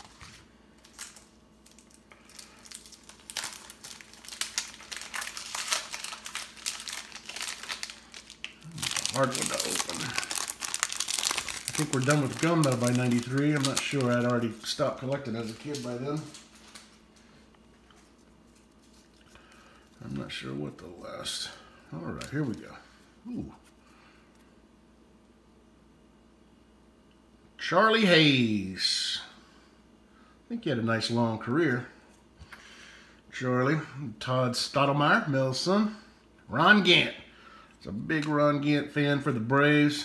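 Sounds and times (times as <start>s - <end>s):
wrapper crinkling and tearing: 0.0s - 17.2s
handling of paper cards: 0.0s - 20.3s, 22.1s - 22.7s.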